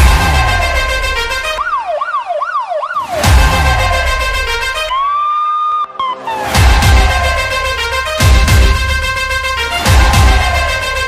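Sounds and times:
siren wailing up and down: 0.3 - 6.6.

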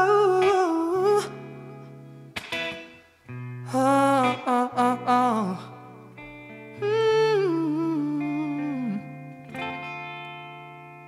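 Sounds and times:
held guitar chord: 0.0 - 11.0.

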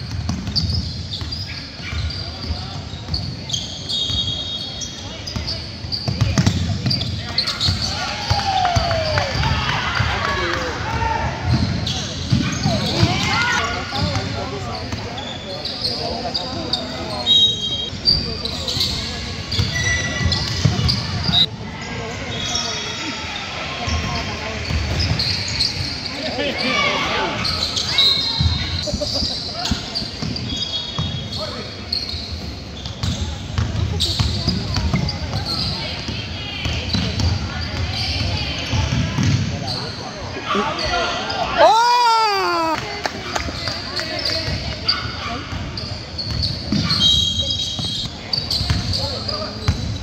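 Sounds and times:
basketball dribbling on court: 0.0 - 3.3
sneaker squeaks: 0.0 - 9.5, 11.4 - 41.7, 43.4 - 50.0
spectators' voices and shouts: 6.1 - 30.1, 37.8 - 45.5.

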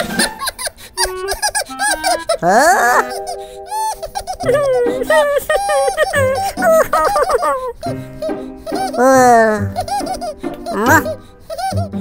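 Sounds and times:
cartoon voices chattering: 1.9 - 7.9, 8.6 - 11.8.

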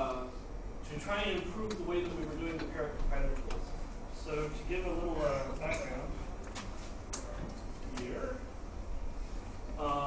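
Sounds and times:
man talking: 0.0 - 6.2, 9.8 - 10.0
low steady hum: 0.0 - 10.0.

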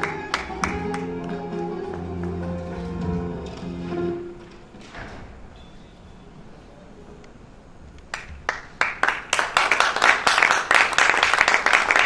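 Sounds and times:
audience applause: 0.0 - 2.4, 8.1 - 12.0
sharp hand claps: 0.0 - 2.4, 8.1 - 12.0.

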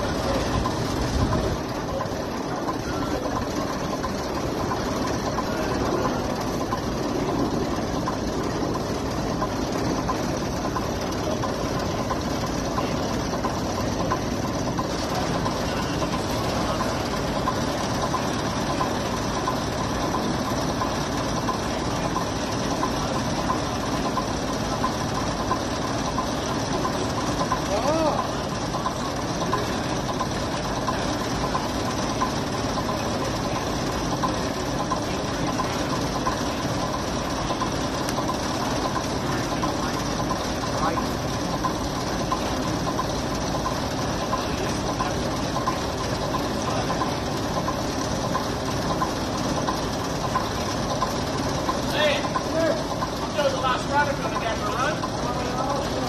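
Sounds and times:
bus diesel engine idling: 0.0 - 56.0.

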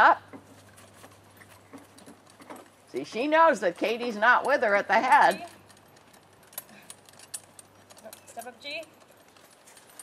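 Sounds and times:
harness jingling: 0.0 - 10.0.

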